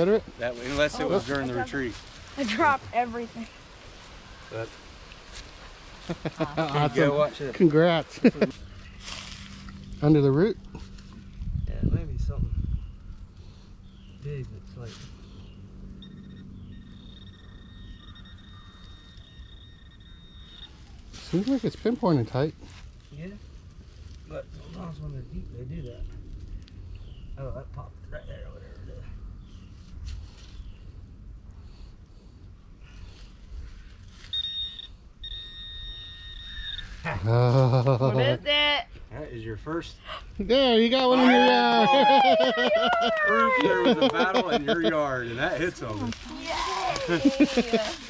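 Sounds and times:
person laughing excitedly: 0:06.1 - 0:07.0, 0:37.2 - 0:38.4, 0:41.2 - 0:45.0, 0:47.0 - 0:47.9
metal detector high-pitched tone: 0:16.0 - 0:20.9, 0:34.2 - 0:37.0.

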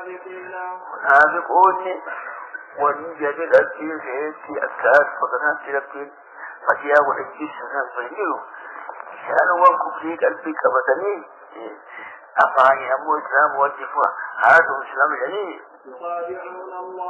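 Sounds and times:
muffled man lecturing: 0:00.0 - 0:16.7.

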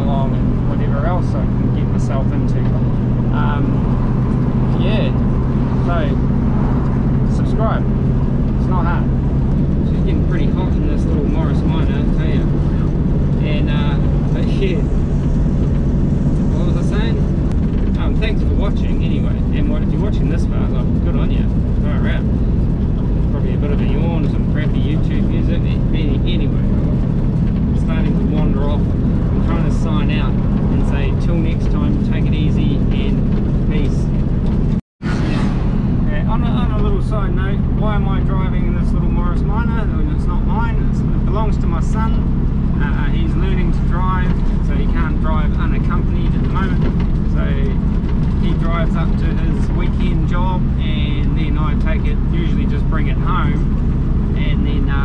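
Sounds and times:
people talking: 0:00.0 - 0:03.9, 0:04.7 - 0:06.3, 0:07.2 - 0:07.9, 0:08.6 - 0:09.1, 0:09.8 - 0:15.0, 0:16.4 - 0:17.2, 0:17.9 - 0:22.3, 0:23.3 - 0:27.0, 0:27.8 - 0:34.1, 0:35.1 - 0:47.8, 0:48.4 - 0:53.7, 0:54.3 - 0:55.0
car engine and road noise drone: 0:00.0 - 0:55.0.

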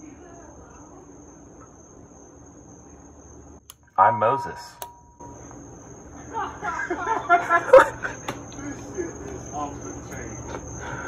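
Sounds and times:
high-pitched insect drone: 0:04.0 - 0:11.0.

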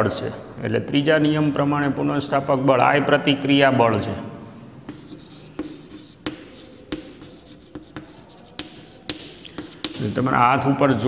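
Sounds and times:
chalk tapping on board: 0:04.9 - 0:10.4
chalk scratching on blackboard: 0:04.9 - 0:10.7.

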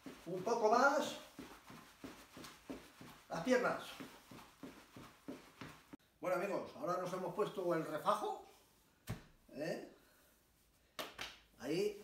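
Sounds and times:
jogging footfall thuds: 0:00.0 - 0:06.0.

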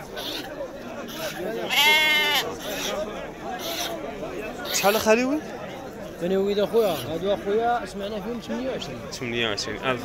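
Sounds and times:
murmur of men talking: 0:00.0 - 0:10.0
sheep bleating: 0:01.6 - 0:02.8.

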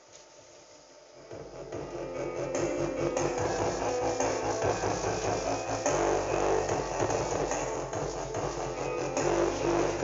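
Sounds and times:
music with prominent bass line: 0:01.2 - 0:10.0.

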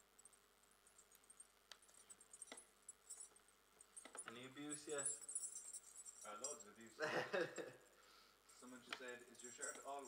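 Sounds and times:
light metallic jingling: 0:00.0 - 0:10.0
man's quiet voice: 0:08.6 - 0:10.0.

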